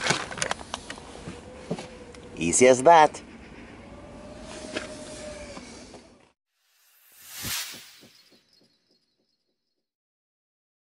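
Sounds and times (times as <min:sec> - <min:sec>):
outdoor background: 0:00.0 - 0:10.0
whoosh swelling to a hit: 0:06.6 - 0:08.8.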